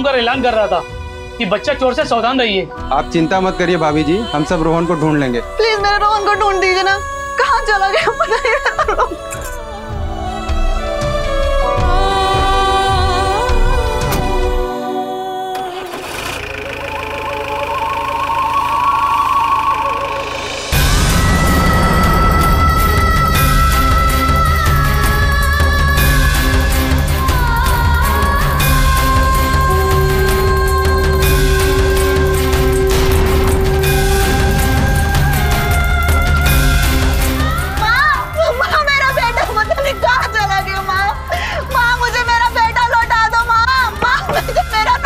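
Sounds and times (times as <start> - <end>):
music playing: 0.0 - 45.0
high voice singing wordless: 2.8 - 16.0
engine starting and idling: 15.5 - 24.4.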